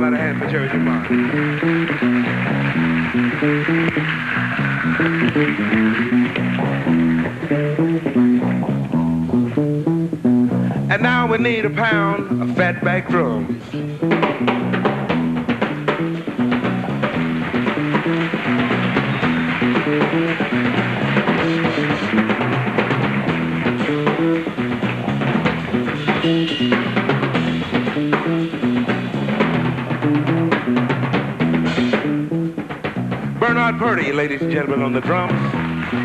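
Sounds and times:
drum kit groove: 0.0s - 36.0s
electric bass riff: 0.0s - 36.0s.

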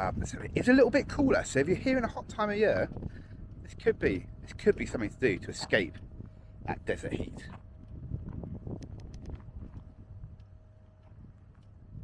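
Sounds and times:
wind buffeting microphone: 0.0s - 12.0s
faint clicks: 8.8s - 9.4s.

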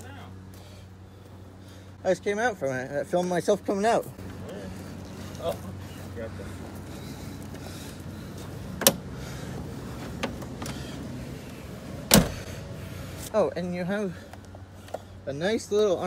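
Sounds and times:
steady low hum: 0.0s - 16.0s
van door thud: 12.0s - 12.6s.

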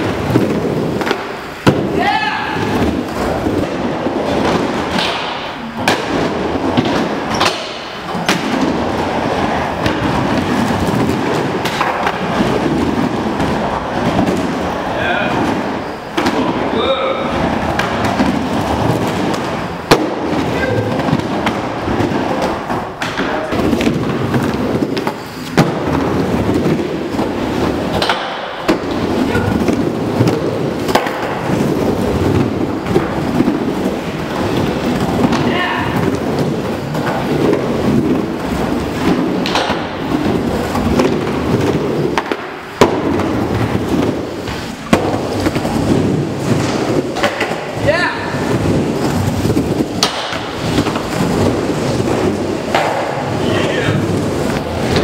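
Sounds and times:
skateboard clacks: 0.0s - 55.0s
skateboard wheels rolling on wood: 0.0s - 55.0s.

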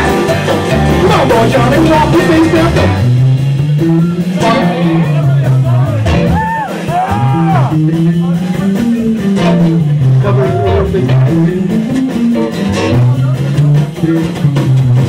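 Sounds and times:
bass guitar: 0.0s - 15.0s
drums: 0.0s - 15.0s
electric guitar bends: 0.0s - 15.0s.

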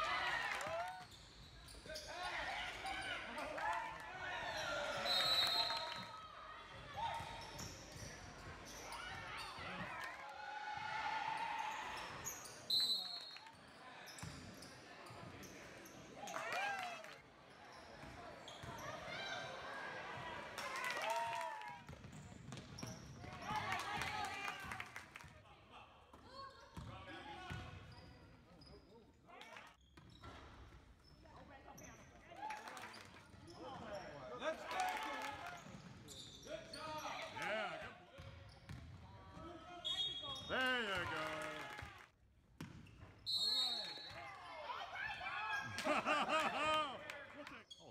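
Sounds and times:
people shouting: 40.5s - 41.8s.

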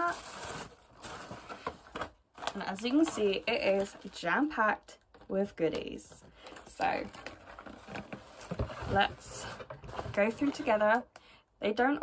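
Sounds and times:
tissue paper rustling: 0.0s - 4.5s, 6.4s - 11.0s.

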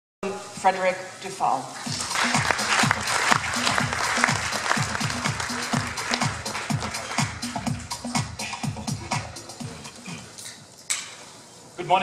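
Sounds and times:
audience applauding: 1.8s - 8.2s
electronic beat music: 1.8s - 10.4s.

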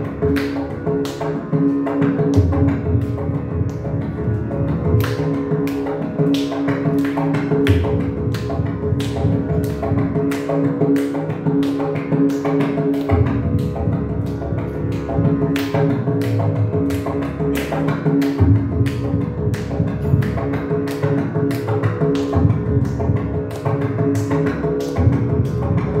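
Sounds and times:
mridangam drum strokes: 0.0s - 26.0s.

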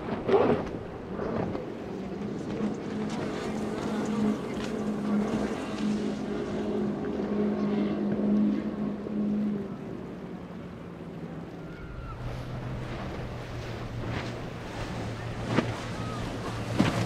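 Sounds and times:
outboard motors drone: 0.0s - 17.0s.

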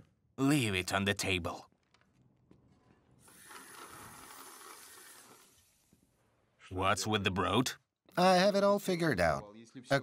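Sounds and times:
water running from a tap: 3.3s - 5.6s.

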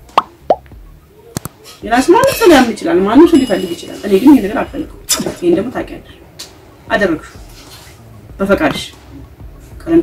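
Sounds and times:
rising bloop pop effects: 0.0s - 1.0s.

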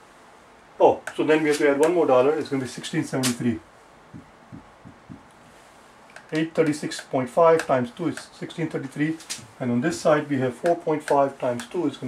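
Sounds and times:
marker writing on whiteboard: 4.2s - 5.4s.

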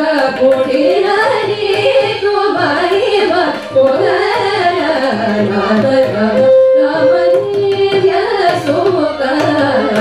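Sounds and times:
violin: 0.0s - 10.0s
women singing: 0.0s - 10.0s
hand drum strokes: 3.7s - 10.0s.

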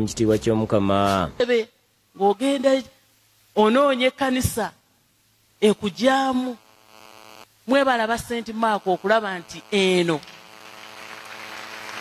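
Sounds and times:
sound system electrical buzz: 5.4s - 12.0s
person speaking: 5.6s - 6.6s, 7.6s - 10.5s.

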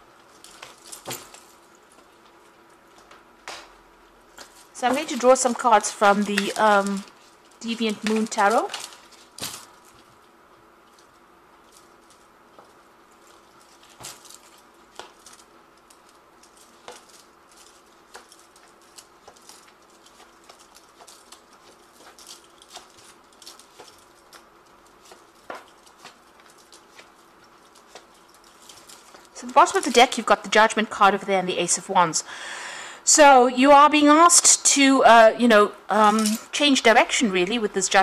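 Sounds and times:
faint steady hum: 0.0s - 38.0s.

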